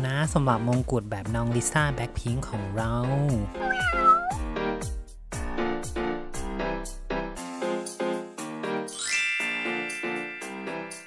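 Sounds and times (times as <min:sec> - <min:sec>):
background music: 0:00.0 - 0:11.0
meow-like call: 0:03.6 - 0:04.4.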